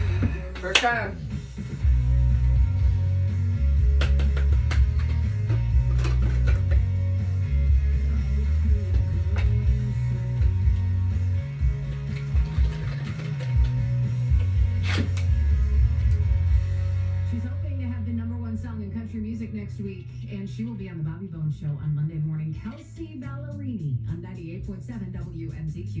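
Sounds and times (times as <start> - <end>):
music with guitar and bass: 0.0 - 26.0.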